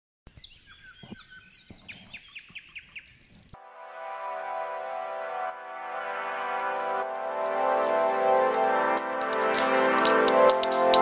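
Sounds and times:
birds chirping: 0.3 - 3.6
music with held notes: 3.6 - 11.0.

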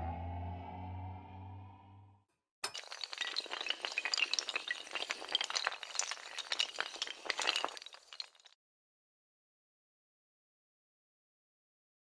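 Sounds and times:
tiles clattering and clinking: 2.6 - 8.6.

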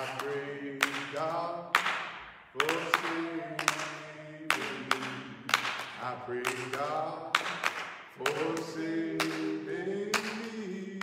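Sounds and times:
man singing unaccompanied: 0.0 - 1.8, 2.6 - 7.5, 8.2 - 11.0
hands clapping: 0.0 - 10.8.

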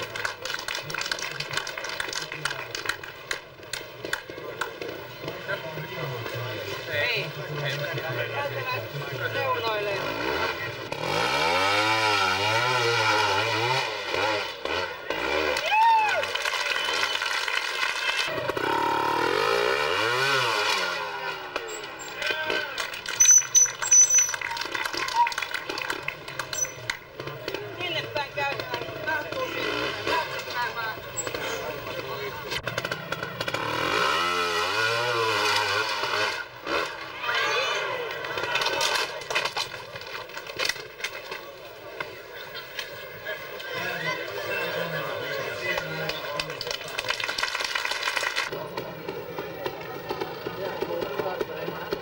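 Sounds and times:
motorcycle engines revving: 0.0 - 52.0.

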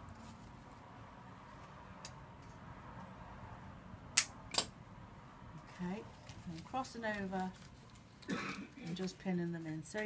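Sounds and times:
faint leaves handling: 0.0 - 1.8, 5.6 - 8.2.

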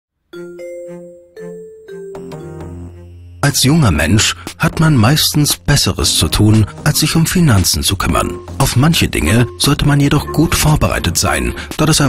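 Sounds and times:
bell-like jingle notes: 0.4 - 4.2.

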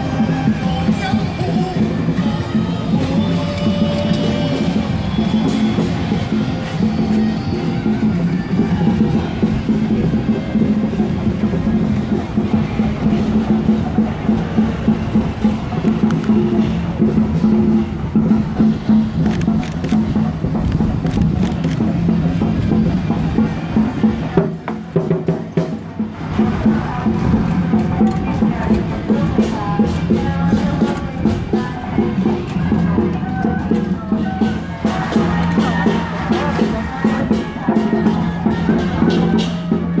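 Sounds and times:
procession music with drums: 0.0 - 40.0.

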